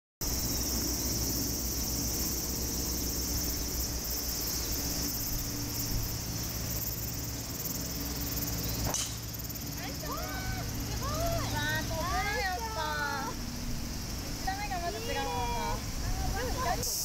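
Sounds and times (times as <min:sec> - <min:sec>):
insects buzzing: 0:00.2 - 0:17.0
golf club striking ball: 0:08.8 - 0:09.5.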